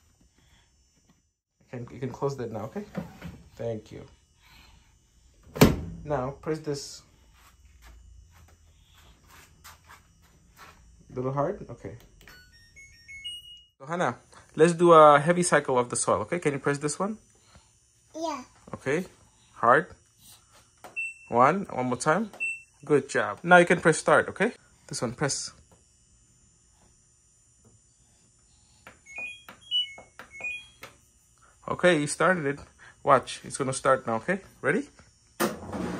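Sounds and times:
washing machine beep tune: 12.0 - 13.8, 20.8 - 23.1, 29.0 - 31.1.

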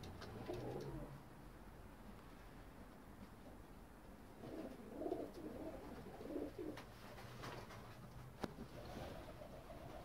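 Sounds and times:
pigeons cooing: 0.0 - 1.2, 4.4 - 6.9.

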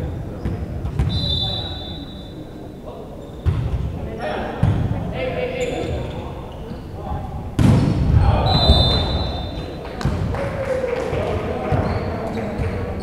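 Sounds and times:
volleyball smacks: 7.6 - 10.3
people shouting in gym: 8.0 - 11.6.

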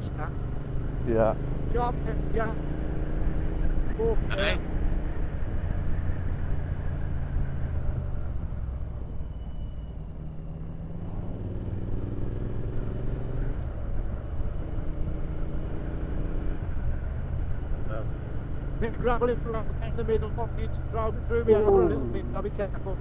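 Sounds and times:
motorcycle engine running: 0.0 - 9.1.

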